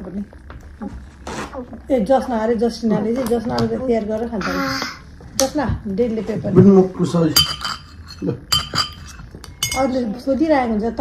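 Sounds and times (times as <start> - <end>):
cutlery clinking on ceramic plates: 7.4 - 10.0.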